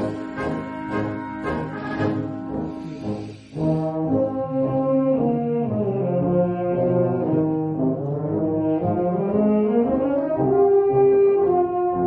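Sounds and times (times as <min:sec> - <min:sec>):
wind band playing brass chords: 0:00.0 - 0:12.0.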